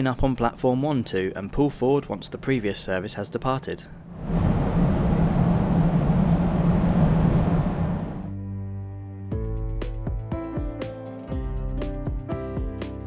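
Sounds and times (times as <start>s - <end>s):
electric train rushing: 4.1s - 8.4s
background music with held notes: 8.3s - 13.0s.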